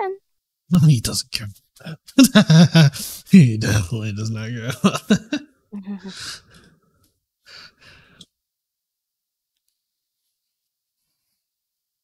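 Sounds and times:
person exhaling breathily: 6.1s - 6.7s.

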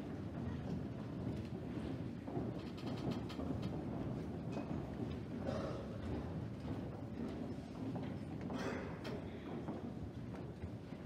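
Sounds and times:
audience murmur and rustle: 0.0s - 11.0s.

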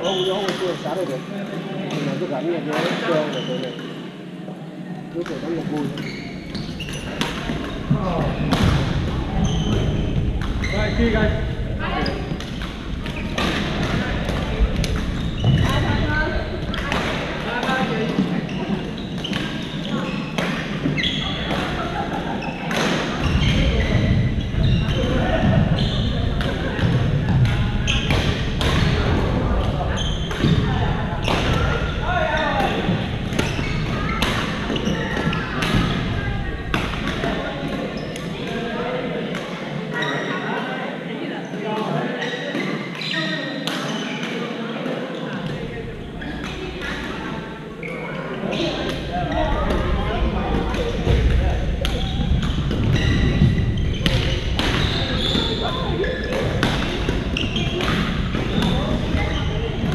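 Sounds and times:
voices in a large hall: 0.0s - 59.9s
rackets hitting shuttlecocks: 56.2s - 59.2s.

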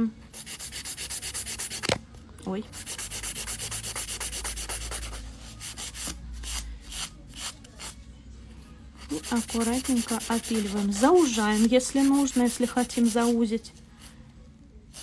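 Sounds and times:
nail file rubbing nail: 0.3s - 2.0s, 2.8s - 8.0s, 9.1s - 13.4s.

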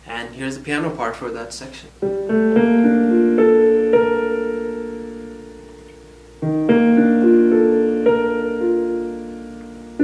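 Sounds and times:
digital keyboard piano chords: 1.9s - 10.0s.

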